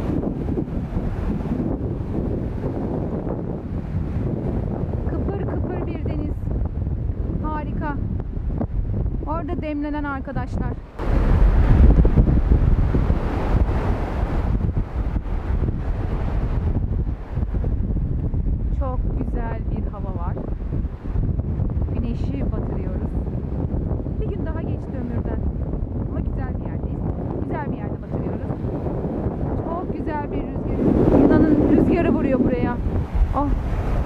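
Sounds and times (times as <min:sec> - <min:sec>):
wind buffeting microphone: 0:00.0 - 0:34.0.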